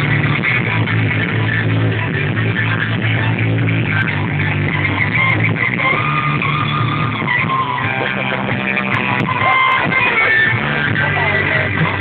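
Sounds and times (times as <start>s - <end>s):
live amplified band music: 0.0s - 12.0s.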